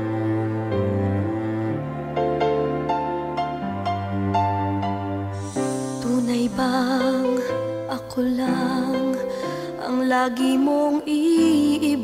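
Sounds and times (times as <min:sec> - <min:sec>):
pop love ballad: 0:05.3 - 0:12.0.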